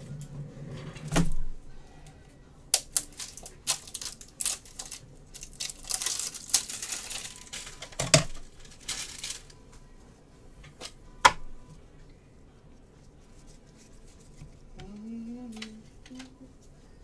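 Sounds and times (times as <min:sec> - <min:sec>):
plastic wrapping crinkling and tearing: 0:02.7 - 0:09.6.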